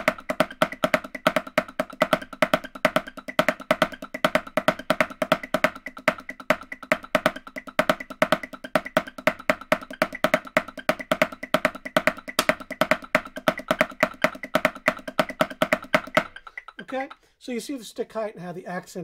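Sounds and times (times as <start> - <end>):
snare drum played with sticks: 0.0 - 17.2.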